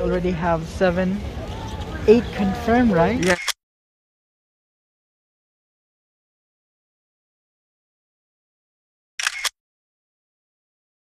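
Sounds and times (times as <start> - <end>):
camera shutter double click: 3.2 - 3.6, 9.2 - 9.6.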